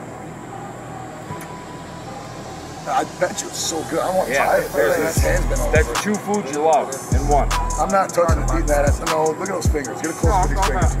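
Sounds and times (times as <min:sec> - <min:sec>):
faint steady hum: 0:00.0 - 0:11.0
faint voices: 0:00.0 - 0:11.0.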